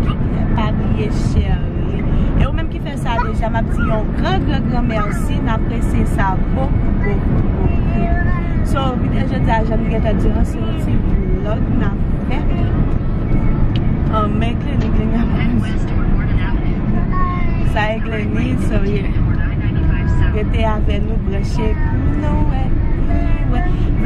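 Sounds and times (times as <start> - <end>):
people talking: 0.0 - 12.8, 14.1 - 24.0
car road and engine rumble: 0.0 - 24.0.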